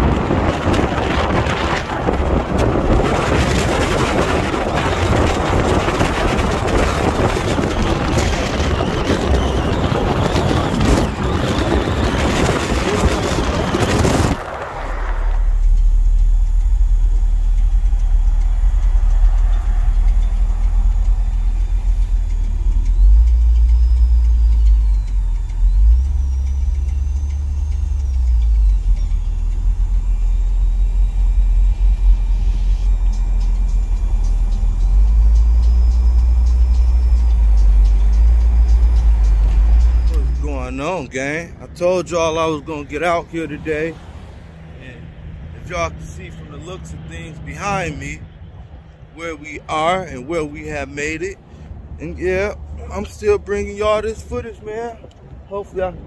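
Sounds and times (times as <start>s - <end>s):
deep bass tones: 0.0s - 44.0s, 44.6s - 56.0s
moving car rumble from inside: 0.0s - 56.0s
outdoor traffic: 0.0s - 56.0s
wind: 0.0s - 56.0s.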